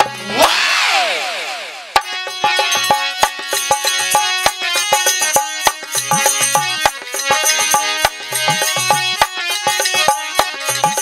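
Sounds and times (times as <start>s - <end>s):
barrel drum rhythm: 2.0s - 11.0s.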